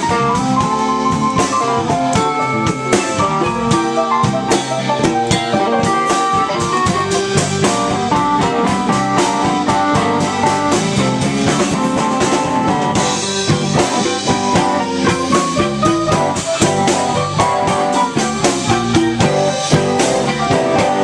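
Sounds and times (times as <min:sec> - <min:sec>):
drum kit: 0:00.0 - 0:21.0
electric bass: 0:00.0 - 0:21.0
mandolin picking lead lines: 0:00.0 - 0:21.0.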